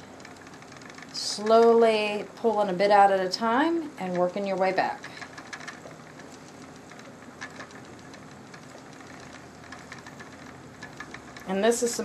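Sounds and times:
mechanical clicking and ticking: 0:00.0 - 0:12.0
spinning wheel whirring: 0:00.0 - 0:12.0.

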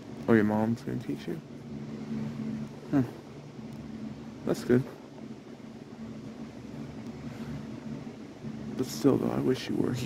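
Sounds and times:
low background hum: 0:00.0 - 0:10.0
low steady tones: 0:00.0 - 0:10.0.

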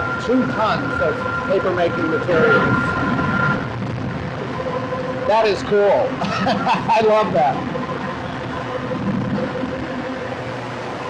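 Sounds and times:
pulper churning slurry: 0:00.0 - 0:06.5
high tone in hum: 0:00.0 - 0:11.0
machine hum: 0:00.0 - 0:11.0.

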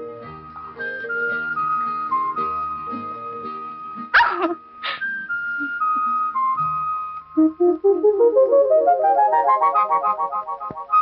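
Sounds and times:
soft film music: 0:00.0 - 0:11.0.

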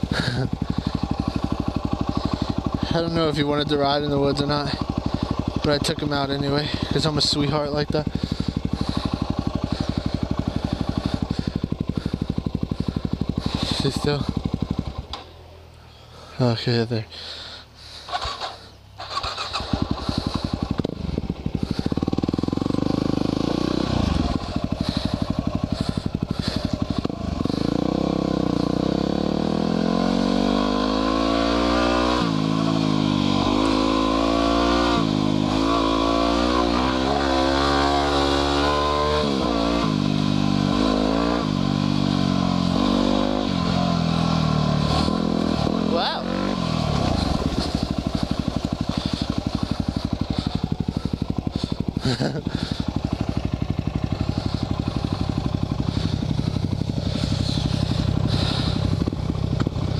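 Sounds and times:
motorcycle engine revving: 0:00.0 - 0:16.3, 0:17.2 - 0:59.9.

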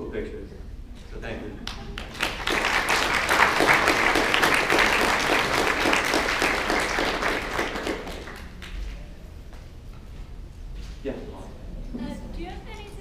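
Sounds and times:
audience applauding: 0:01.6 - 0:09.0.

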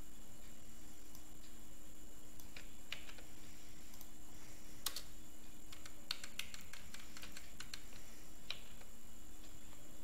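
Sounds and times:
computer keyboard key clicks: 0:05.7 - 0:07.9.

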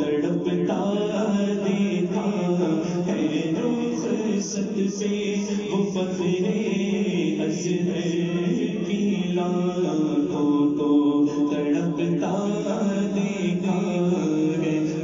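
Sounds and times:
devotional vocal chanting: 0:00.0 - 0:15.0.

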